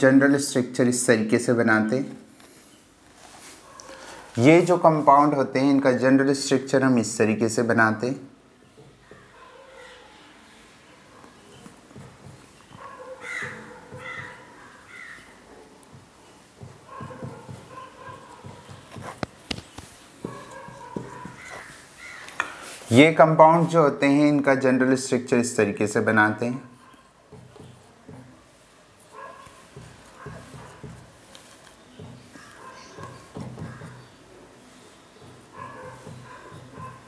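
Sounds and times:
marker on whiteboard: 0:01.9 - 0:06.7, 0:11.2 - 0:25.0, 0:25.8 - 0:37.0
harsh animal calls: 0:12.8 - 0:15.5, 0:20.3 - 0:22.7.

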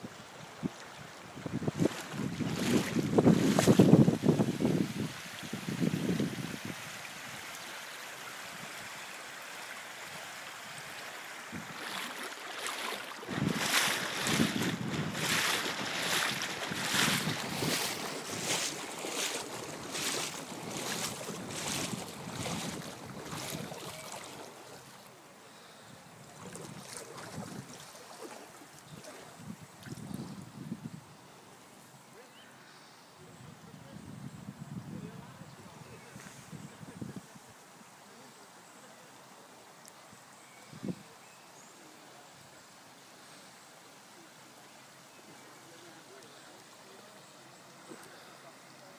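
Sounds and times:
wind buffeting microphone: 0:01.4 - 0:07.0, 0:13.3 - 0:24.4, 0:26.2 - 0:27.8, 0:28.9 - 0:31.0.

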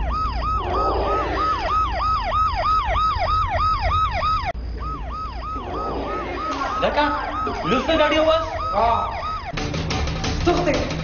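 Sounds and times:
electronic siren yelping: 0:00.0 - 0:09.6.

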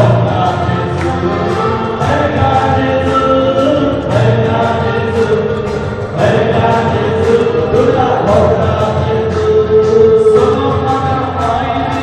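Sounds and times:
congregation singing a hymn: 0:00.0 - 0:12.0
people clapping along: 0:00.0 - 0:12.0.

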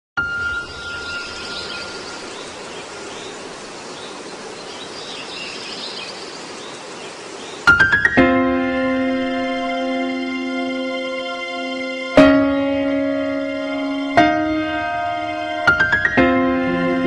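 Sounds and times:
piano music: 0:00.2 - 0:03.3, 0:07.7 - 0:17.0
faint bird chirps: 0:00.2 - 0:08.0.

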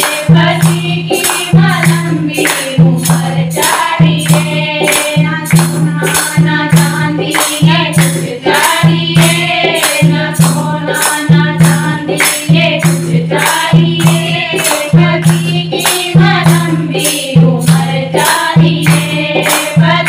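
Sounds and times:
hand clapping to a beat: 0:00.0 - 0:20.0
women singing devotional song: 0:00.0 - 0:20.0.

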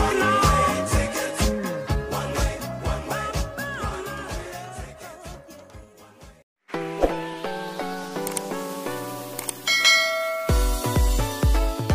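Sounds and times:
notification bell ding: 0:09.7 - 0:10.8.

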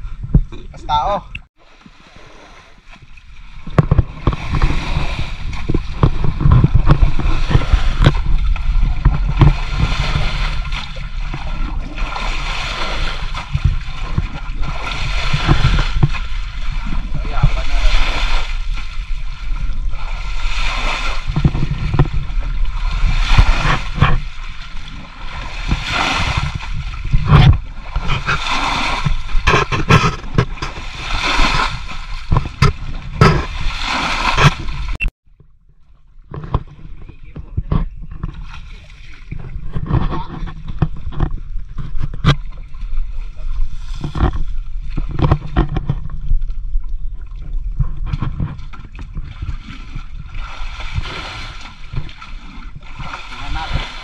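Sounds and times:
water splashing: 0:00.3 - 0:54.0
bucket scooping muddy water: 0:01.5 - 0:54.0.

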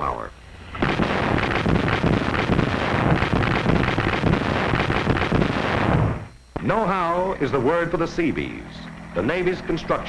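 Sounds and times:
rocket barrage crackling roar: 0:00.7 - 0:06.8.

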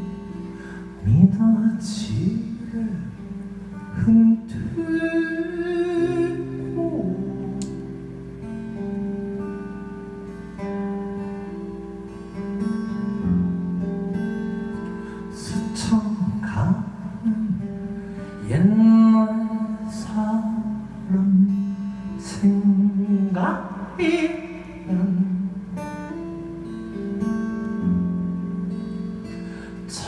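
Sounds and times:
guitars plucked and strummed: 0:00.0 - 0:30.0.

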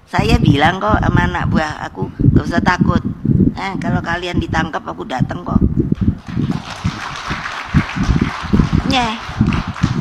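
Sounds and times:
audience laughing and clapping: 0:06.2 - 0:10.0.

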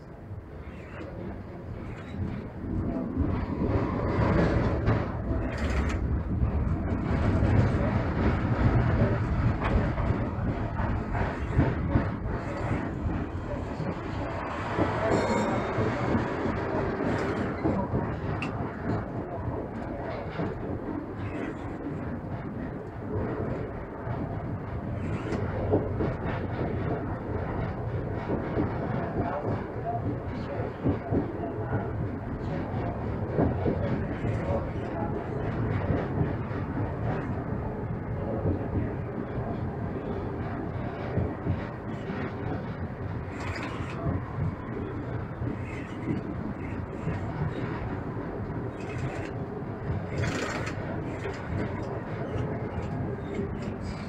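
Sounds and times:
tram wheels rumbling on rail: 0:00.0 - 0:54.0.

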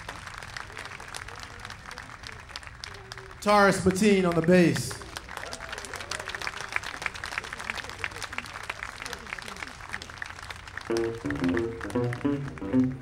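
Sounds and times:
audience applauding: 0:00.0 - 0:13.0
faint crowd voices: 0:00.0 - 0:13.0.

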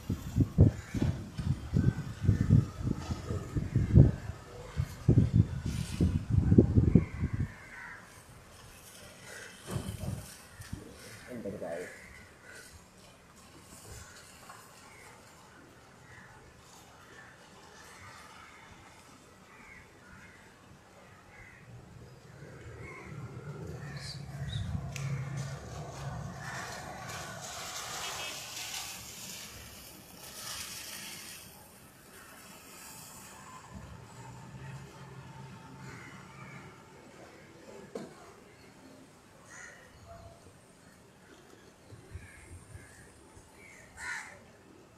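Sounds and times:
low rumble: 0:21.8 - 0:27.8
rain falling: 0:23.6 - 0:36.9.

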